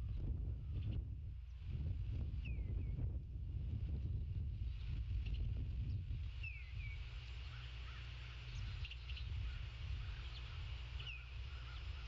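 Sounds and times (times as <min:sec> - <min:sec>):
wind rumble on microphone: 0:00.0 - 0:12.0
birds chirping: 0:06.4 - 0:12.0
faint bird calls: 0:06.4 - 0:12.0.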